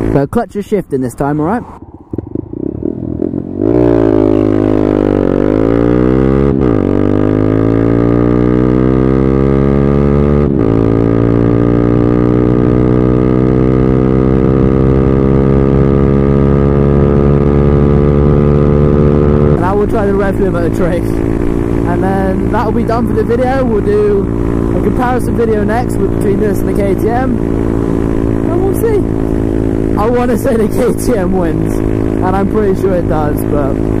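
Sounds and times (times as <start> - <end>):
motorcycle engine revving: 0.0 - 0.3, 1.2 - 34.0.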